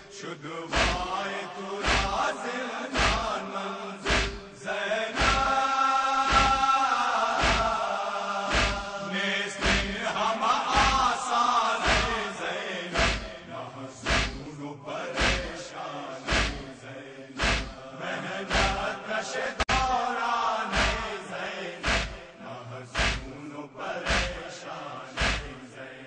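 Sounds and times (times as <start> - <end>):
men chanting together: 0.0 - 26.0
chest-beating thuds: 0.7 - 1.1, 1.8 - 2.3, 3.0 - 3.4, 4.0 - 4.6, 5.2 - 5.5, 6.3 - 6.7, 7.4 - 7.9, 8.5 - 9.0, 9.6 - 10.1, 10.8 - 11.1, 11.8 - 12.2, 13.0 - 14.5, 15.2 - 15.6, 16.3 - 16.8, 17.4 - 17.8, 18.5 - 18.9, 20.8 - 21.2, 21.8 - 22.4, 23.0 - 23.4, 24.0 - 24.5, 25.2 - 25.6.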